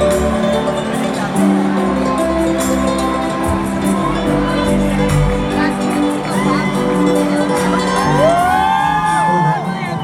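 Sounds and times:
live band music: 0:00.0 - 0:10.0
crowd cheering and whooping: 0:06.2 - 0:10.0.

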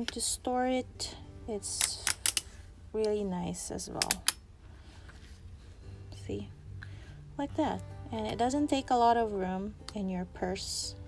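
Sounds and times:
tripod plastic clicks: 0:01.7 - 0:02.5, 0:03.9 - 0:04.4.

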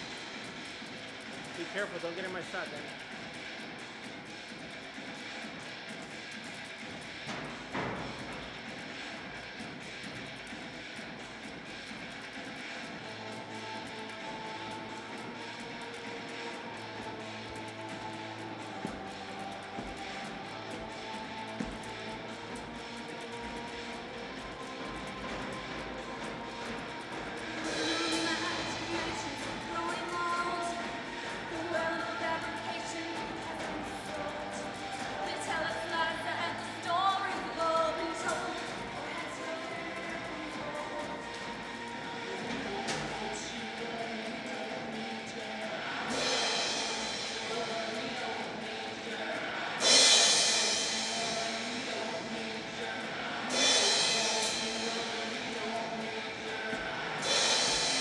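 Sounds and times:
industrial rock song through speakers: 0:00.0 - 0:58.0
person singing: 0:13.0 - 0:58.0.

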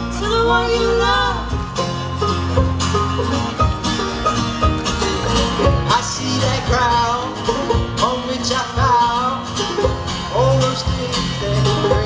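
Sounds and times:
acoustic guitar: 0:00.0 - 0:12.0
banjo: 0:00.0 - 0:12.0
double bass: 0:00.0 - 0:12.0.

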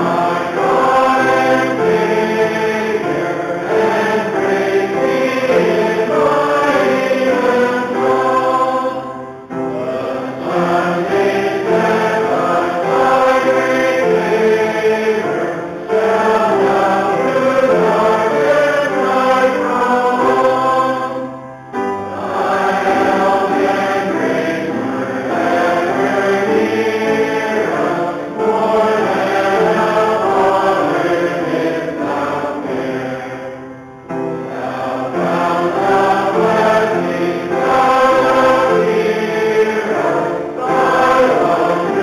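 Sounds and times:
congregation singing a hymn: 0:00.0 - 0:42.0.

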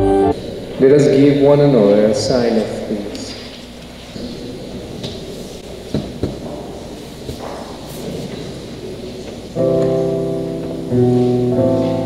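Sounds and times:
soft knocks: 0:05.9 - 0:08.6.

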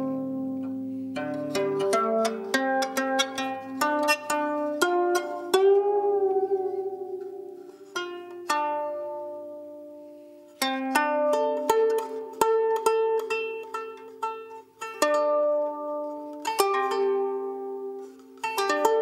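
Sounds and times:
plucked zither melody: 0:00.0 - 0:19.0.

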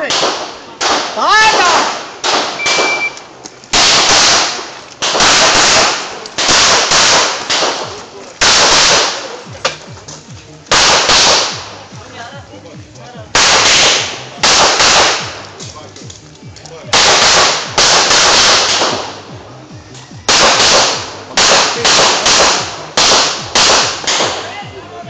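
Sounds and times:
pistol shots echoing: 0:00.0 - 0:09.9, 0:10.7 - 0:11.9, 0:13.3 - 0:15.7, 0:16.9 - 0:19.4, 0:20.3 - 0:24.5
shot timer beep: 0:02.6 - 0:03.2.

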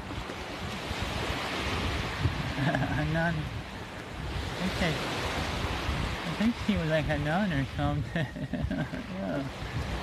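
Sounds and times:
small waves breaking on beach: 0:00.0 - 0:10.0
wind on microphone: 0:00.0 - 0:10.0.

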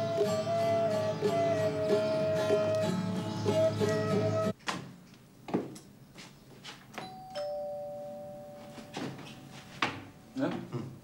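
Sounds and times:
two-tone door chime: 0:07.0 - 0:10.4.

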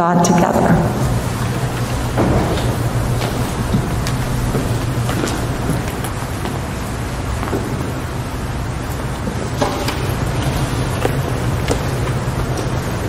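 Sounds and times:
rumbling room noise with hum: 0:00.0 - 0:13.0
footsteps knocking: 0:00.6 - 0:08.1.

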